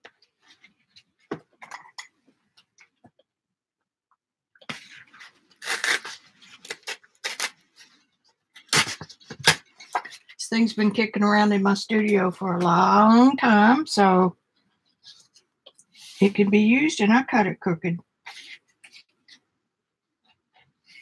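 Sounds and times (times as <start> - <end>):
paper tearing: 4.8 - 7.7, 8.6 - 9.7.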